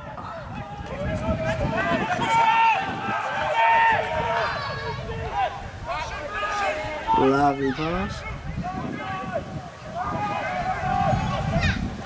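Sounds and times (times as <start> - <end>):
wind rumble on microphone: 0.0 - 12.0
people shouting high calls: 1.3 - 11.9.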